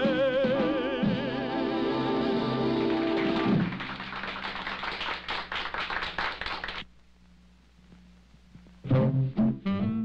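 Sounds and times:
audience applause: 2.5 - 6.9.

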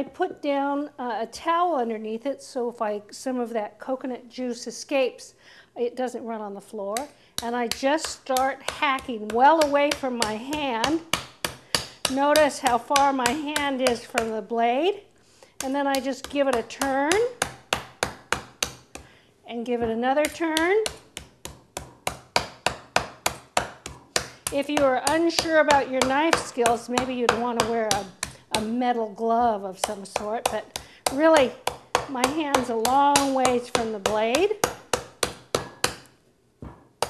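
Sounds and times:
knife chopping coconut husk: 7.0 - 14.3, 15.6 - 19.1, 20.2 - 28.7, 29.8 - 36.1.

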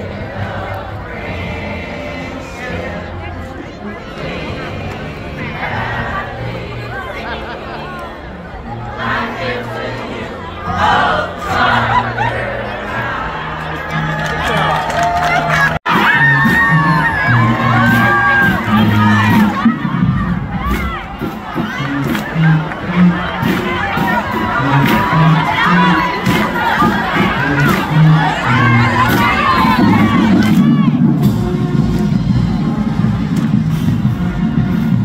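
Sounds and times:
crowd cheering and shouting: 0.0 - 35.0
music with bass line: 13.5 - 35.0.

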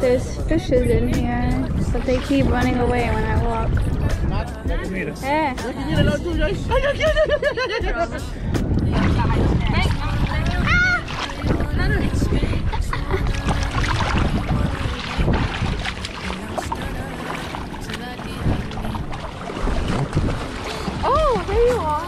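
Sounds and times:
wind buffeting microphone: 0.0 - 22.0
seawater sloshing and splashing: 1.2 - 4.4, 8.8 - 22.0.

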